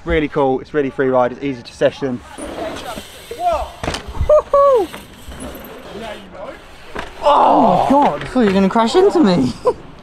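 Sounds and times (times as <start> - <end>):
bike landing thud on dirt: 3.7 - 5.1
person whooping: 4.3 - 4.9, 7.2 - 8.0.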